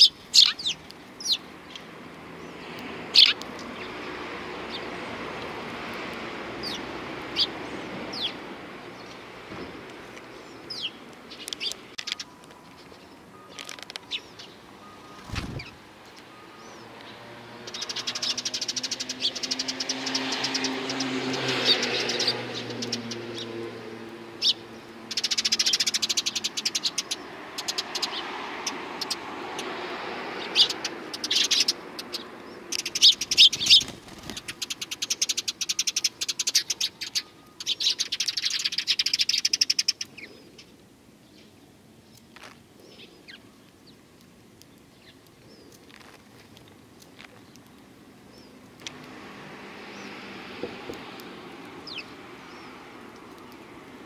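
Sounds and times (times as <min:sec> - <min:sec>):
sparrows chirping: 0:00.0 - 0:05.7, 0:06.4 - 0:54.0.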